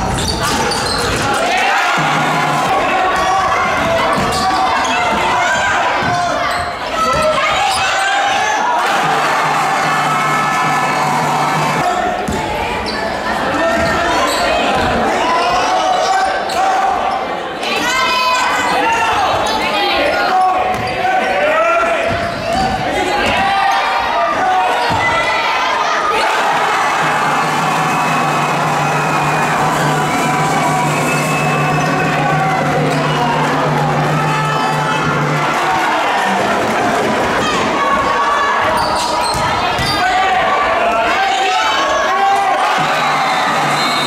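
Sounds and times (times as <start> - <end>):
overlapping voices: 0.0 - 6.5, 22.8 - 38.8.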